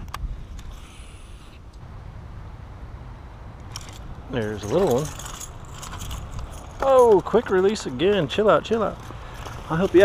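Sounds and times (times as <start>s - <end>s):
low rumbling handling noise: 3.2s - 10.0s.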